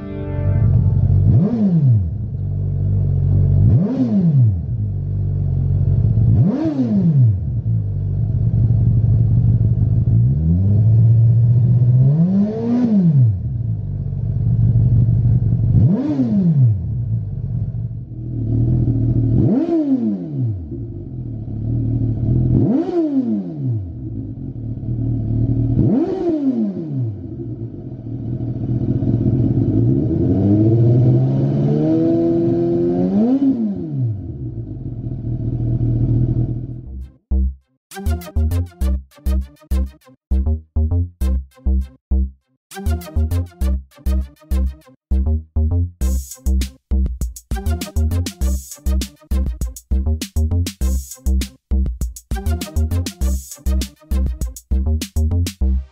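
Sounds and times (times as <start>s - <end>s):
engine revving with throttle blips: 0.0s - 37.5s.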